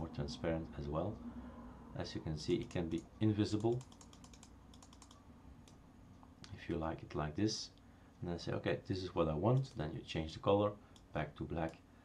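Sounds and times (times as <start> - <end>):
keyboard typing: 2.5 - 5.8.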